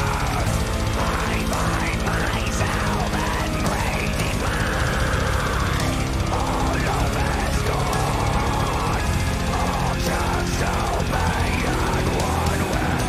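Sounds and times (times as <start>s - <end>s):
symphonic death metal song: 0.0s - 13.0s.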